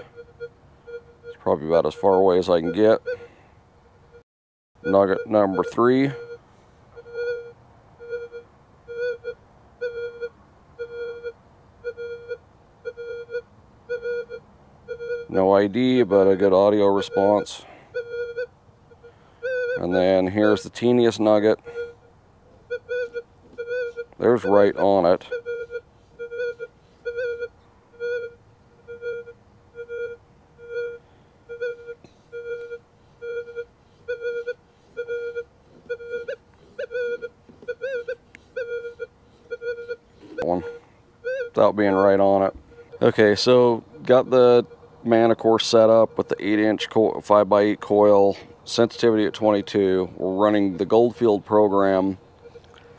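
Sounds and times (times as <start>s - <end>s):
metal detector beeps: 0.0s - 3.3s, 4.8s - 52.9s.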